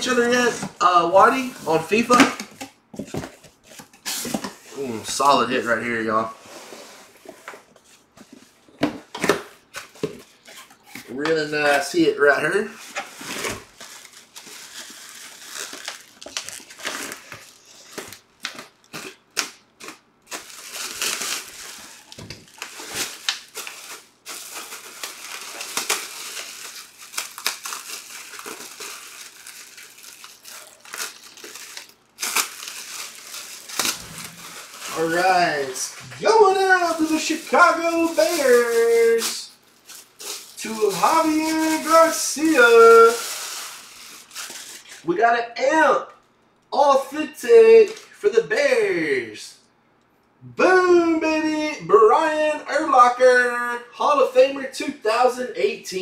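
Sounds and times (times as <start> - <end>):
packaging rustling and scraping: 9.5 - 11.9, 12.6 - 19.2, 19.8 - 45.0
plastic wrapping crinkling: 9.8 - 45.0.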